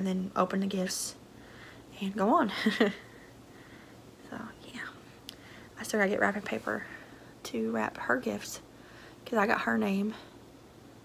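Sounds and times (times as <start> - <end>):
woman whispering: 4.2 - 5.1.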